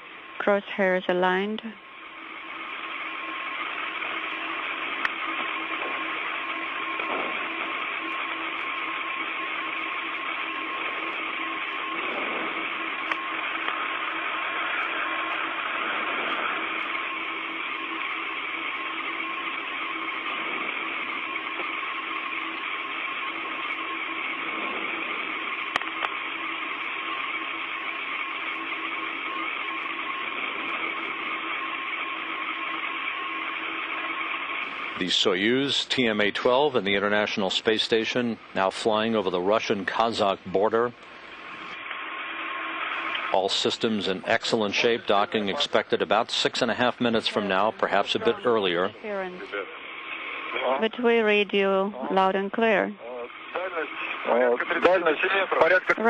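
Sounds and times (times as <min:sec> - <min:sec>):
faint steady hum: 0:00.0 - 0:56.0
radio static hiss: 0:00.0 - 0:56.0.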